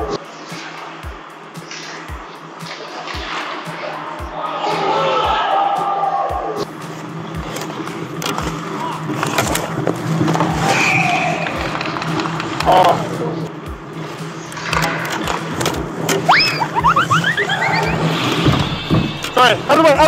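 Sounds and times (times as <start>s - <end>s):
hockey sticks and puck clacking: 0.1s - 5.1s, 6.6s - 17.4s
skate blades scraping on ice: 1.6s - 4.8s, 6.7s - 13.4s
quick rising squeals: 10.0s - 12.4s, 16.2s - 19.7s.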